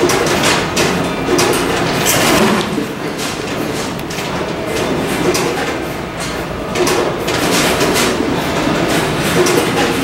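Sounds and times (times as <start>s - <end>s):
clattering machinery: 0.0s - 10.0s.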